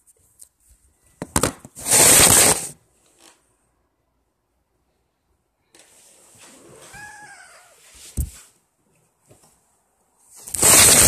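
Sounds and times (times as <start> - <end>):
cat meowing: 6.7 - 7.8.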